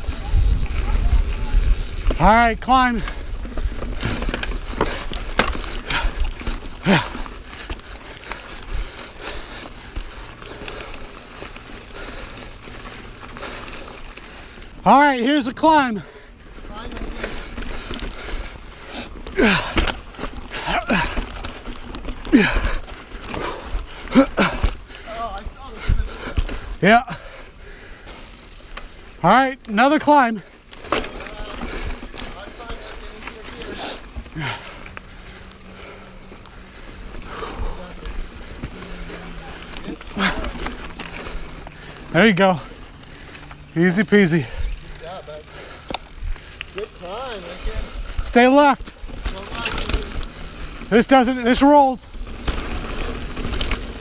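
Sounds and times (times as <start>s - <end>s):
wind rumble on microphone: 0.0s - 2.2s
bike knocking and rattling: 0.0s - 54.0s
person breathing hard and grunting: 4.0s - 11.2s, 16.0s - 28.3s, 32.6s - 43.6s.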